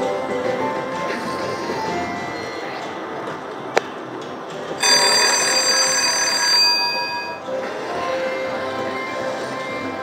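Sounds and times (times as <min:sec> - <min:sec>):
casino background: 0:04.8 - 0:07.5
slot machine bell ringing: 0:04.8 - 0:07.6.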